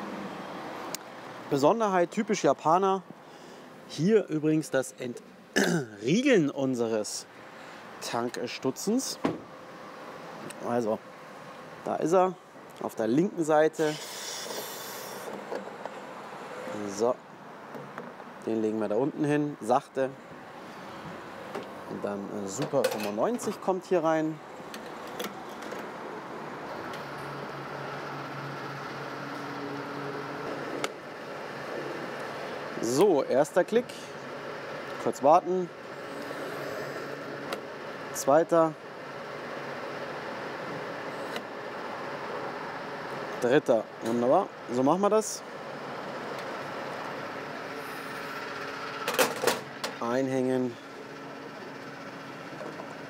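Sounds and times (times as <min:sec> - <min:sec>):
high hiss: 0:13.8 - 0:15.4.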